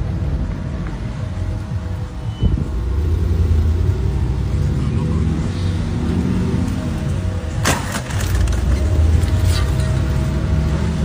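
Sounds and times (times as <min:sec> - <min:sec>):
car engine rumbling and revving: 0:00.0 - 0:11.0.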